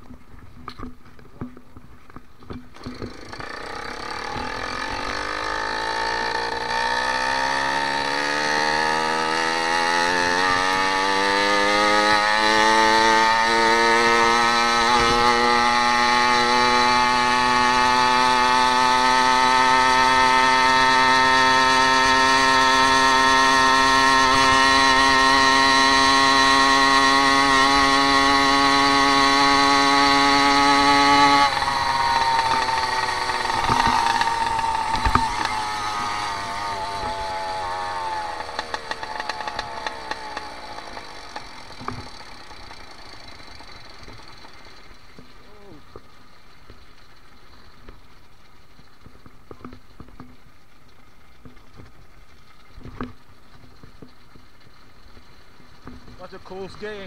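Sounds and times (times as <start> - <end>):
two-stroke engine running hard: 2.8 - 47.4.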